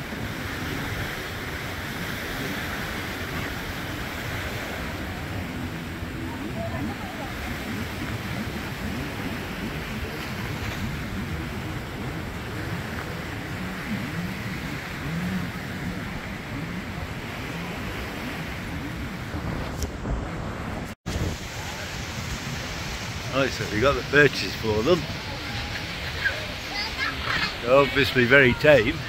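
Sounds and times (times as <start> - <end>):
surf: 0.0 - 29.0
wind rumbling on microphone: 0.0 - 29.0.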